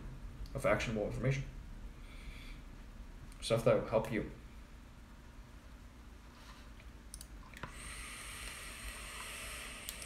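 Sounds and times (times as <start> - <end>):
vape clicks: 7.2 - 10.0
vape hissing: 7.7 - 10.0.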